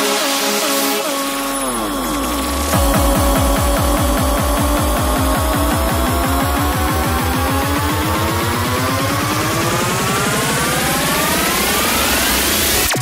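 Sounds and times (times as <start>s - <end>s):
falling synth sweep: 0.0s - 13.0s
rising synth tones: 0.0s - 13.0s
rolling bassline: 0.0s - 13.0s
driving kick drum: 1.6s - 12.6s.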